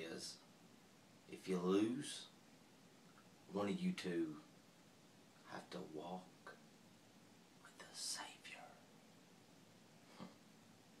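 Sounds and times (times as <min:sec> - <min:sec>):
man whispering: 0:05.4 - 0:06.6, 0:07.6 - 0:08.9.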